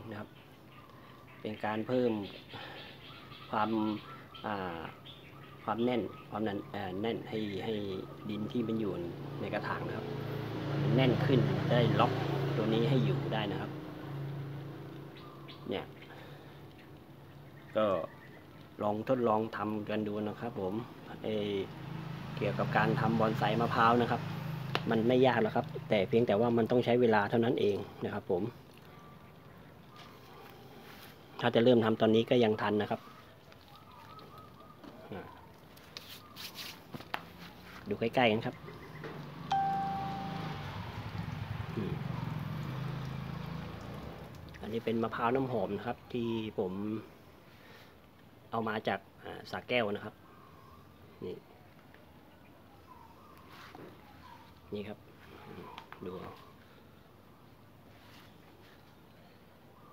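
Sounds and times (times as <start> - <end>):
faint bird chirps: 0.0 - 9.8, 32.6 - 36.8, 38.4 - 41.2, 50.0 - 59.9
chime-like ring: 39.5 - 41.0.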